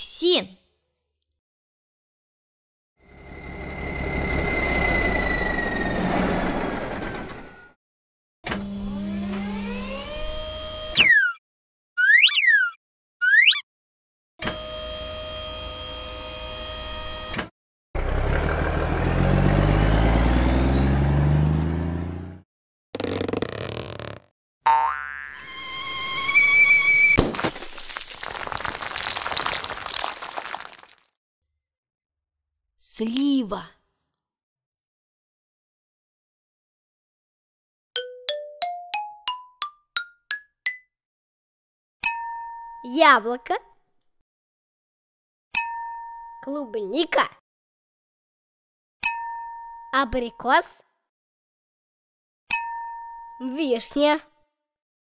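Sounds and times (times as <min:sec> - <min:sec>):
cartoon truck engine revving: 0:18.0 - 0:22.4.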